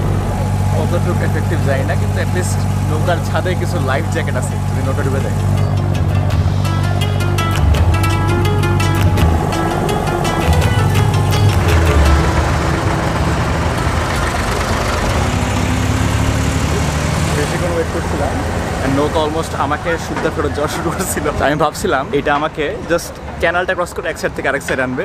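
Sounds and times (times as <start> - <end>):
boat diesel engine running: 0.0 - 25.0
music with a beat: 5.6 - 13.4.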